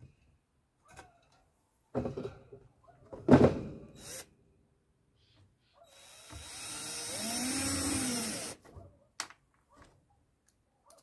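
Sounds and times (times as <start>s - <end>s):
knock and clatter of wood: 1.9s - 3.8s
cordless drill driving a screw: 5.9s - 8.6s.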